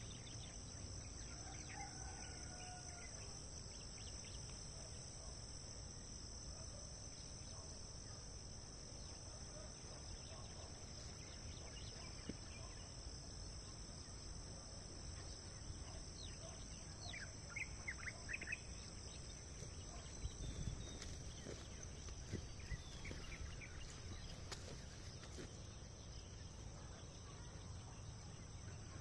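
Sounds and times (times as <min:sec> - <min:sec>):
insects chirring: 0:00.0 - 0:29.0.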